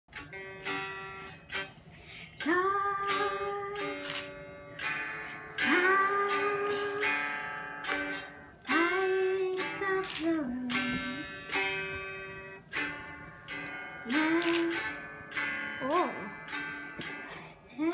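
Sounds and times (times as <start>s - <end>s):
electric guitar chords ringing: 0.1s - 17.9s
picked guitar notes: 0.1s - 17.9s.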